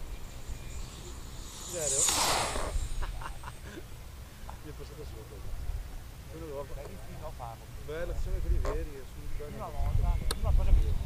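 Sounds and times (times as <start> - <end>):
glider whooshing past: 0.0 - 4.3.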